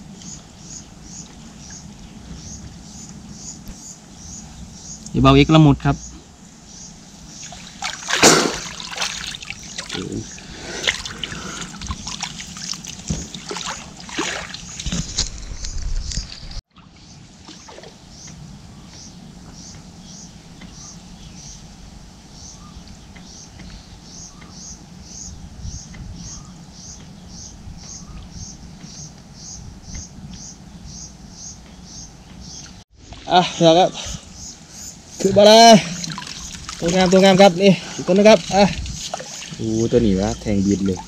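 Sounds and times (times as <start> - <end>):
water sloshing and splashing: 7.3 - 18.1, 35.2 - 41.0.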